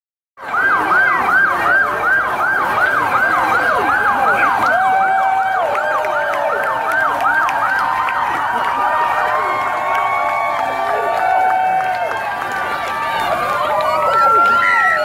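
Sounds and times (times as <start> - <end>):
police sirens yelping: 0.4 - 15.0.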